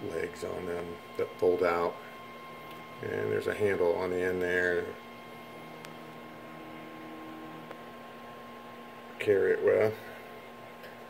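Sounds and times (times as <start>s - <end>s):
electrical hum with high whine: 0.0s - 11.0s.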